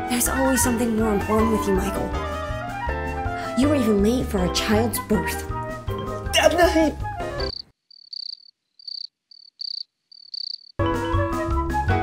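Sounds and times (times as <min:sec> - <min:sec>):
crickets chirping: 0:07.4 - 0:10.8.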